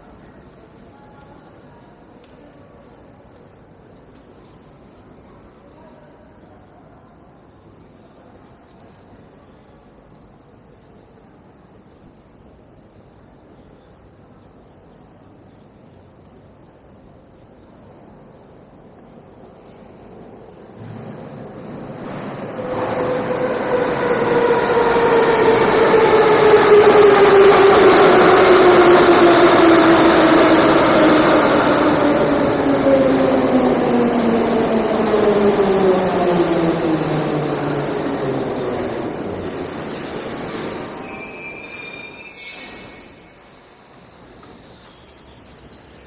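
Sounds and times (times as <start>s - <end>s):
metro train braking whine: 0.0s - 46.0s.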